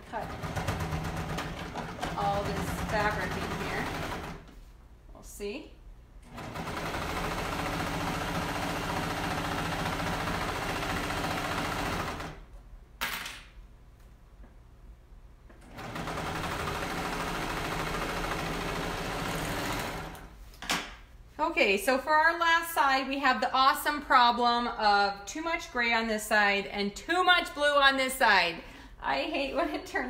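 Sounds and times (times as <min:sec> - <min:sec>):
serger stitching thick fabric: 0:00.0 - 0:04.5, 0:06.2 - 0:12.4, 0:15.6 - 0:20.3.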